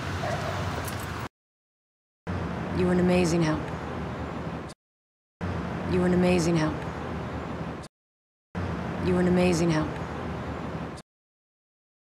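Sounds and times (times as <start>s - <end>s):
street background noise: 0.0s - 1.3s, 2.3s - 4.8s, 5.4s - 7.9s, 8.6s - 11.0s.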